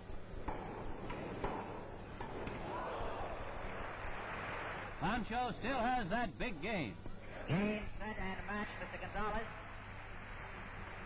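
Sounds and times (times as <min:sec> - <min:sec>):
tennis ball struck by rackets: 0:00.4 - 0:02.6.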